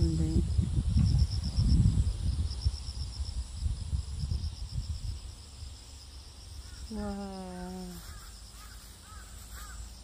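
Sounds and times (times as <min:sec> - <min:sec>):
high insect drone: 0:00.0 - 0:10.0
faint bird calls: 0:06.6 - 0:10.0.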